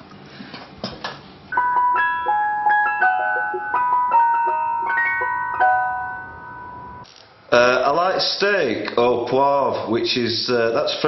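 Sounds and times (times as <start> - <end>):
electronic chime tune: 1.5 - 7.0.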